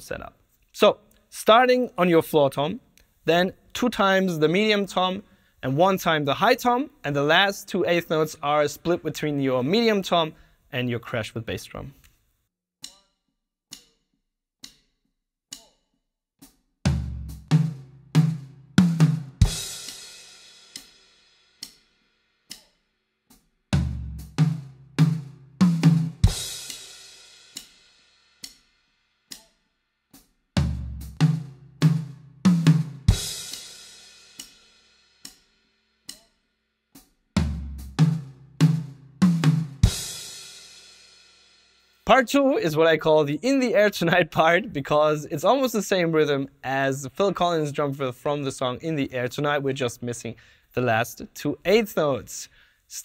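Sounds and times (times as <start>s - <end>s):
metronome clicks: 12.8s - 13.1s, 13.7s - 14.0s, 14.6s - 14.8s, 15.5s - 15.8s, 22.5s - 22.8s, 27.6s - 27.8s, 28.4s - 28.6s, 29.3s - 29.6s, 36.1s - 36.4s
tom drum fill: 16.9s - 20.2s, 23.8s - 26.9s, 30.6s - 33.8s, 37.4s - 40.6s
crash cymbal with bass drum: 16.9s - 22.6s, 23.3s - 29.4s, 30.2s - 36.2s, 37.0s - 41.9s.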